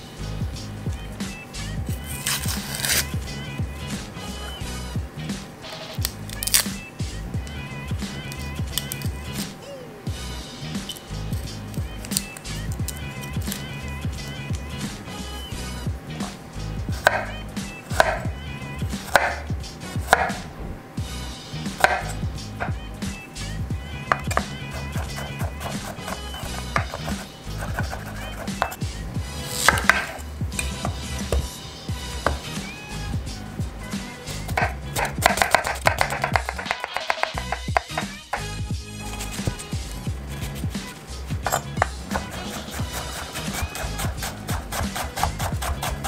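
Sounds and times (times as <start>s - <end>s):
background music with a beat: 0.0s - 46.0s
knife slicing onion on wooden board: 2.0s - 3.1s, 17.0s - 18.3s, 19.0s - 19.4s, 20.0s - 20.5s, 21.7s - 22.7s, 24.1s - 31.5s, 34.3s - 46.0s.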